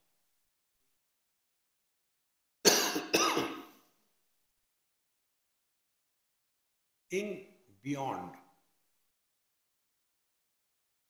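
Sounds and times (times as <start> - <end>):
man coughing: 2.7 - 3.8.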